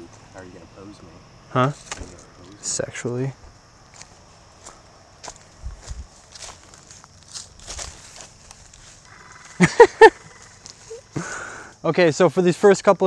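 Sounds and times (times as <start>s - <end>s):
footsteps on leafy ground: 3.4s - 11.0s
man laughing: 9.5s - 11.6s.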